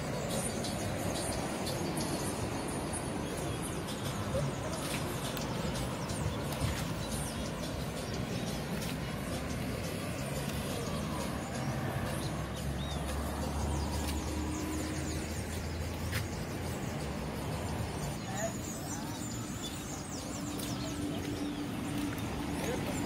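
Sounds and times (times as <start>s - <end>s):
cars passing: 0.0s - 23.0s.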